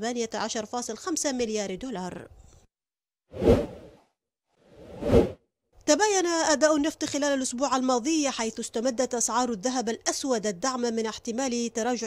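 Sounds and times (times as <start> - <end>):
whoosh sound effect: 3.4 - 4.0, 4.8 - 5.4.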